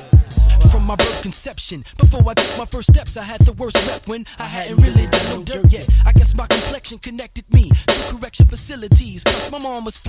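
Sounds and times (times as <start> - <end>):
rapping over a beat: 0.0 - 10.0
heavy kick drums: 4.8 - 6.6.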